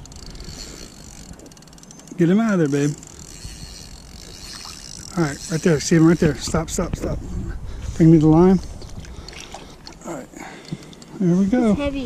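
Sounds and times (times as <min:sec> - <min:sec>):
fishing reel ticking: 0:00.0 - 0:07.0
wind rumble on microphone: 0:06.0 - 0:09.8.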